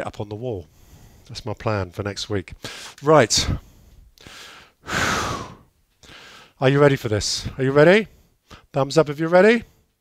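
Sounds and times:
man sighing: 4.9 - 6.3.

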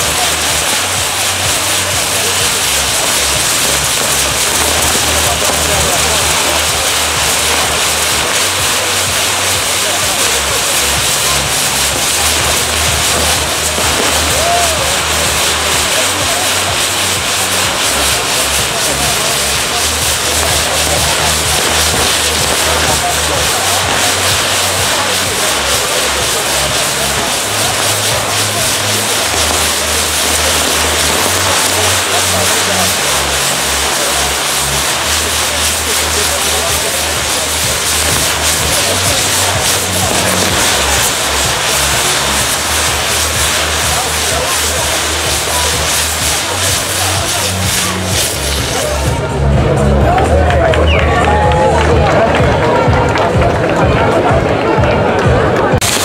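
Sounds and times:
fireworks hissing and crackling: 0.0 - 56.0
low uneven rumble: 0.0 - 56.0.

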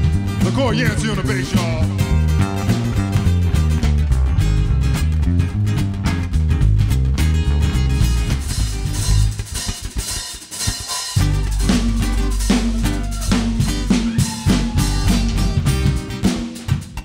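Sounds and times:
low bass: 0.0 - 9.6, 11.2 - 16.4
band playing: 0.0 - 17.0
drum kit playing: 0.0 - 17.0.

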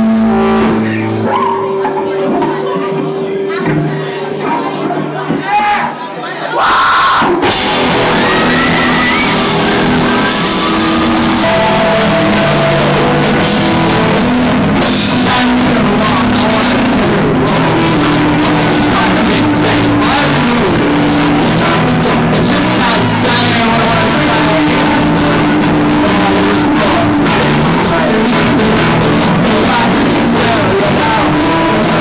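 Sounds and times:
live rock band playing: 0.0 - 5.4, 7.2 - 32.0
person singing: 7.4 - 32.0.

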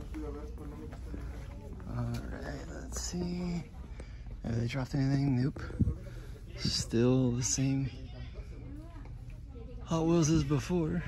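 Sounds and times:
store background hum: 0.0 - 11.0.

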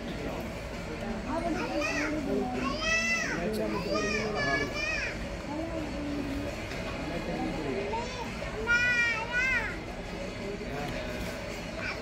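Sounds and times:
children calling and chattering: 1.2 - 6.7, 7.5 - 10.4, 11.6 - 12.0.

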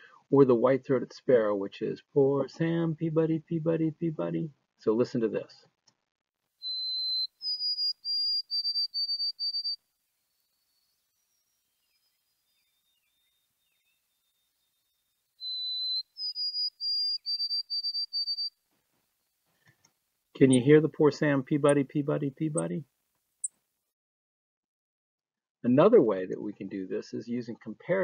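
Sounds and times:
sparrow singing whistled song: 6.6 - 18.6.

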